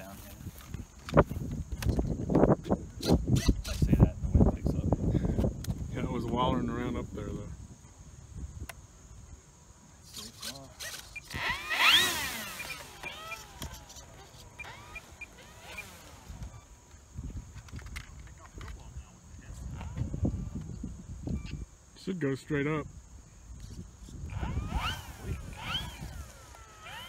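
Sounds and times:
wind buffeting microphone: 0.0 - 9.4, 11.4 - 21.8, 22.8 - 27.0
high insect drone: 0.0 - 27.0.

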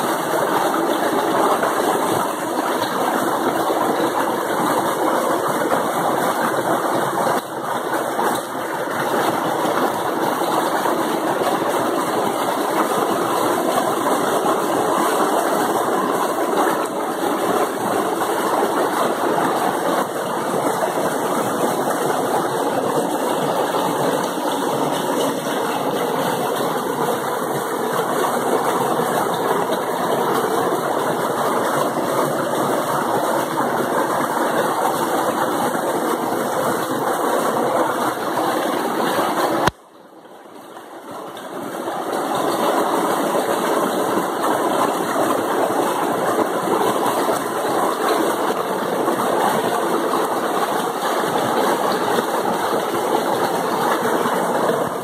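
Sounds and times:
water rushing over rocks: 0.0 - 55.0.

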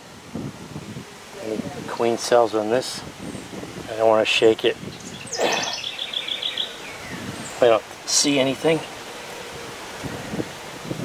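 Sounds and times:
songbird singing a trill: 4.8 - 7.9.

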